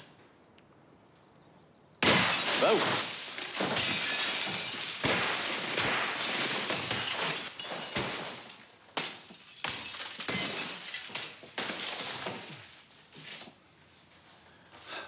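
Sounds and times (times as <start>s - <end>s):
falling glass shards tinkling: 2.0s - 13.1s
glass smashing: 2.0s - 13.1s.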